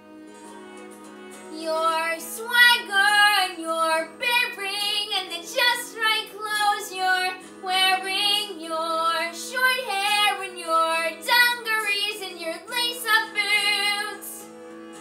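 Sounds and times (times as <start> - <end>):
instrumental accompaniment: 0.0 - 15.0
girl singing ballad: 1.5 - 14.4.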